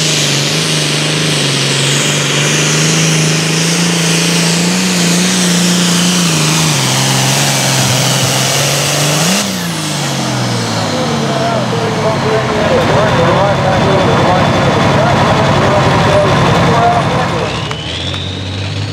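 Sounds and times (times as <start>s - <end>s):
diesel tractor engine under load: 0.0s - 18.9s
high whine: 0.0s - 18.9s.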